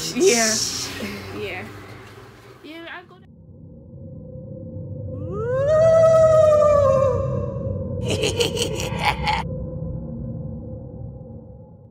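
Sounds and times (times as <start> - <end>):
low drone: 3.3 - 11.9.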